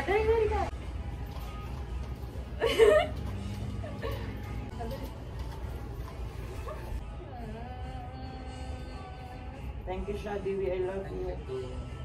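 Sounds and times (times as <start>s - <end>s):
people talking: 0.0s - 0.7s, 9.9s - 11.6s
faint background music: 0.0s - 12.0s.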